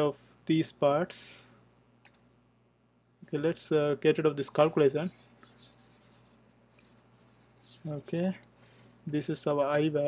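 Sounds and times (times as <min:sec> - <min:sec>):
stylus scratching on tablet: 0:04.6 - 0:08.4.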